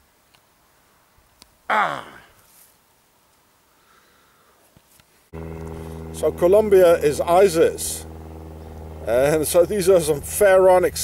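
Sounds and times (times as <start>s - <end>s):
steady low hum: 5.3s - 11.0s.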